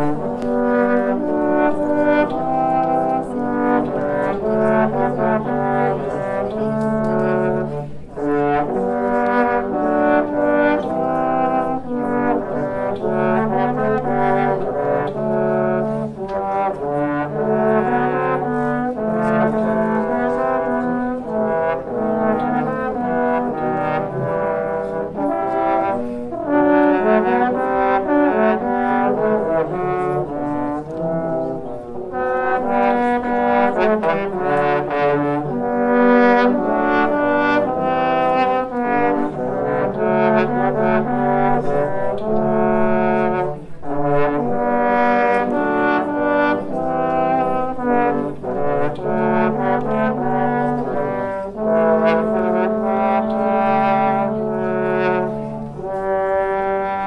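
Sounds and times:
trombones playing in harmony: 0.0s - 57.0s.

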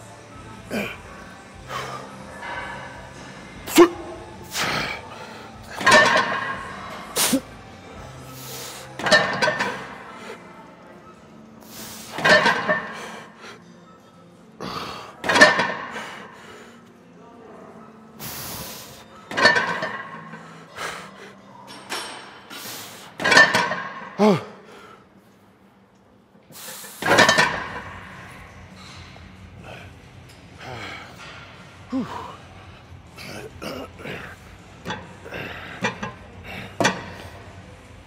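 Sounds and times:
faint background music: 0.0s - 38.0s
man grunting and breathing hard: 24.2s - 24.9s, 31.9s - 32.4s.

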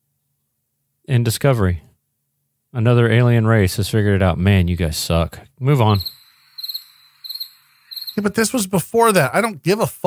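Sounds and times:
cricket chirping: 5.8s - 8.6s.

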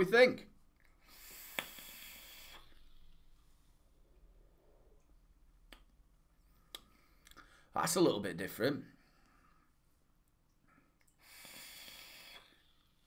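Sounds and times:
hiss of air through atomiser: 1.0s - 3.2s, 11.2s - 13.0s.

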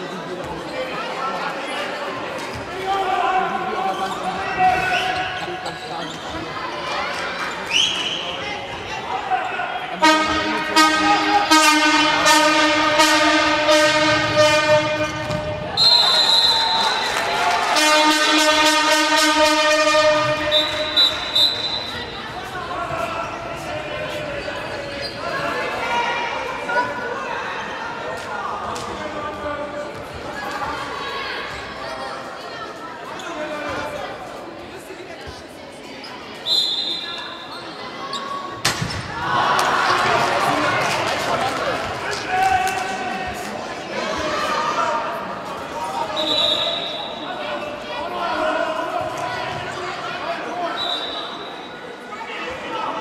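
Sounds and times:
crowd voices: 0.0s - 53.0s
loud horn blast: 10.0s - 15.8s, 17.7s - 21.4s
handball bouncing on hall floor: 11.6s - 16.1s.

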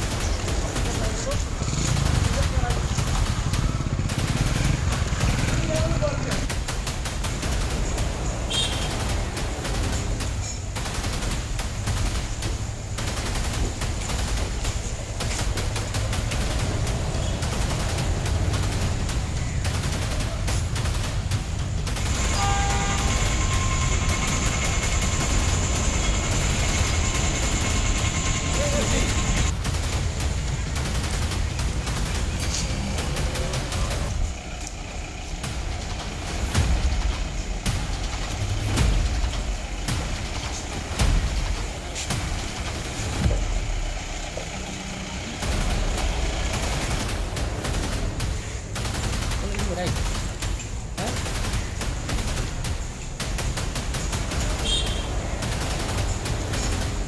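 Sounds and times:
passing traffic: 0.0s - 57.0s.

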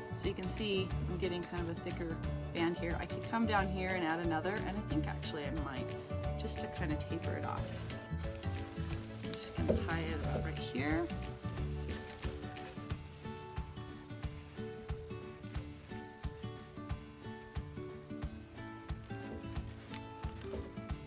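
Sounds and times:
dry stalks rustling: 0.0s - 21.0s
quiet background music: 0.0s - 21.0s.

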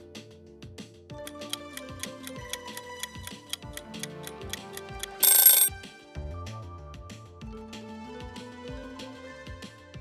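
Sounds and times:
background music: 0.0s - 10.0s
countdown timer ticking: 1.2s - 5.7s
loud ringing alarm: 5.1s - 5.7s.

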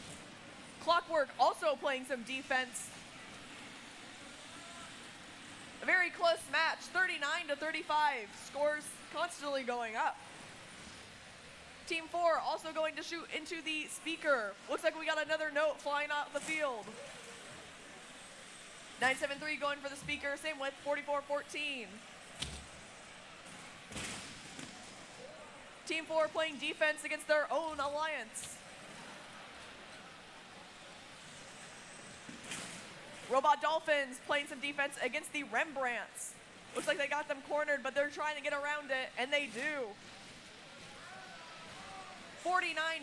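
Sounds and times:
crowded hall background noise: 0.0s - 43.0s.

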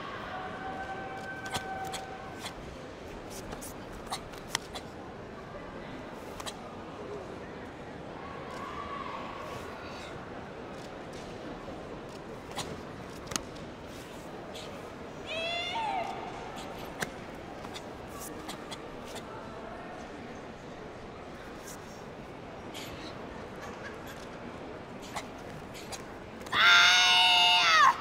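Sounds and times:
high-pitched shout: 26.5s - 28.0s.

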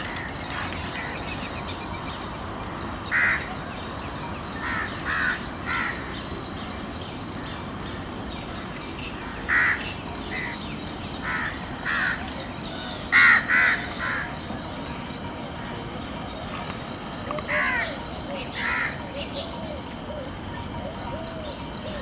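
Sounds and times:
insect trill: 0.0s - 22.0s
crows cawing: 3.1s - 3.5s, 4.6s - 6.1s, 9.2s - 10.6s, 11.2s - 12.3s, 13.0s - 14.4s, 17.3s - 19.0s.

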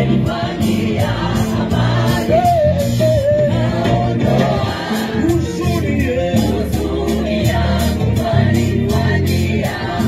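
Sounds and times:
choir singing gospel music: 0.0s - 10.0s
steady beat and bass line: 0.0s - 10.0s.

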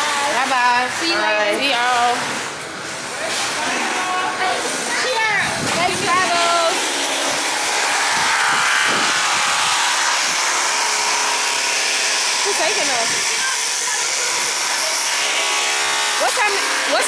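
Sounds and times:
loud rushing wind: 5.0s - 10.8s
faint voices: 12.4s - 17.0s.

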